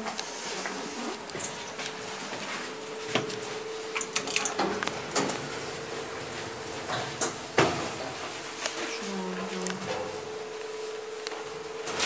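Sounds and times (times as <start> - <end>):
elevator hum: 0.0 - 12.0.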